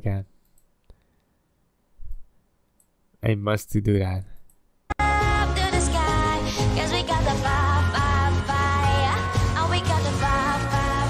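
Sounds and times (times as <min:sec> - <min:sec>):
computer mouse clicks: 0:00.4 - 0:01.3.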